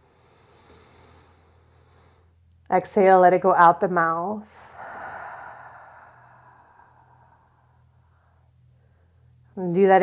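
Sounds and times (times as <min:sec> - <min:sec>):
deep breath out: 0:04.5 - 0:09.4.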